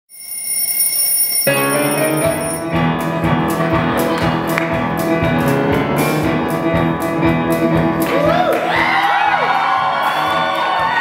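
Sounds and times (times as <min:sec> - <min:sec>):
high bell-like ringing tone: 0:00.1 - 0:02.7
piano chords: 0:01.5 - 0:08.4
bass notes: 0:01.6 - 0:08.5
drums: 0:01.6 - 0:11.0.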